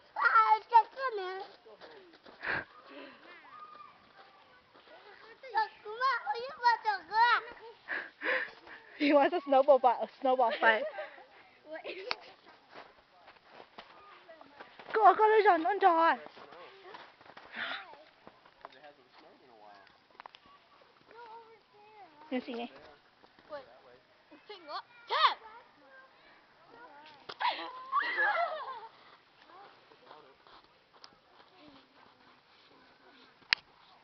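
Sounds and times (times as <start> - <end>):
faint distant voices: 0.0 - 34.0
footsteps crunching in snow: 12.4 - 19.3, 28.8 - 34.0
high-pitched vocal cries: 27.4 - 28.9.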